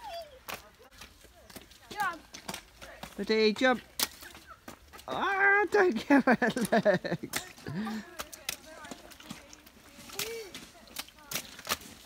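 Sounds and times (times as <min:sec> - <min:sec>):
boots splashing in puddle: 0:00.4 - 0:12.0.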